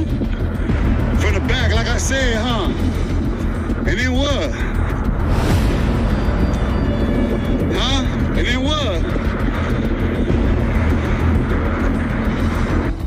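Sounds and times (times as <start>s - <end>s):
background music: 0.0s - 13.0s
steady low rumble: 0.0s - 13.0s.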